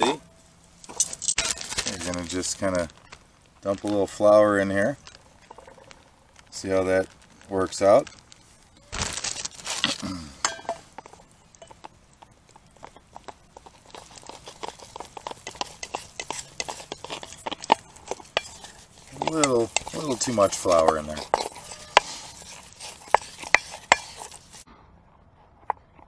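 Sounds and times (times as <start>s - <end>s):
stick scraping metal bowl: 0.9s - 24.7s
flour rustling out of a bag: 1.4s - 3.0s, 5.9s - 10.2s, 13.6s - 24.6s.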